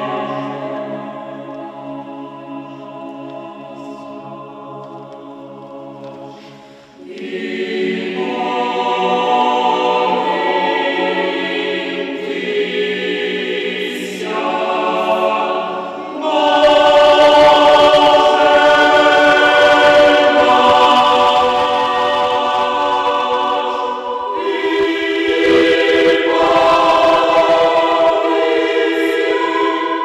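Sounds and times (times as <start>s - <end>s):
choir singing sacred music: 0.0s - 30.0s.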